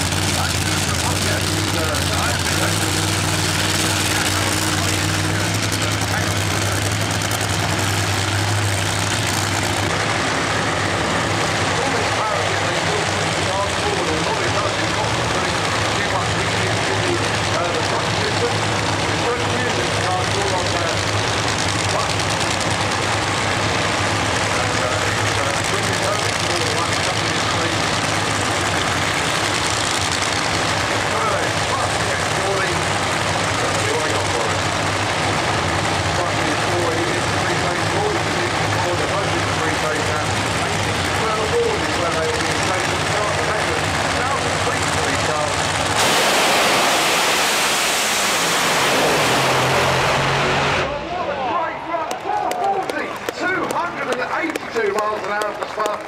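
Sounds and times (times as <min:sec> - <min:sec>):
race car engines idling loud: 0:00.0 - 0:56.0
race cars full-throttle launch: 0:00.0 - 0:56.0.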